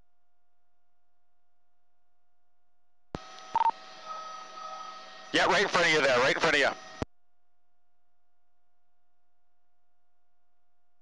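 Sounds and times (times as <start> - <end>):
radio channel hiss and hum: 3.2 - 7.1
short radio beep: 3.5 - 6.8.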